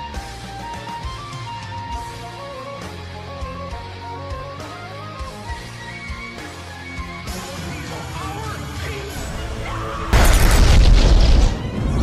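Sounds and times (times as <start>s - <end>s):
dramatic trailer music: 9.1s - 12.0s
deep rumbling explosion boom: 10.2s - 12.0s.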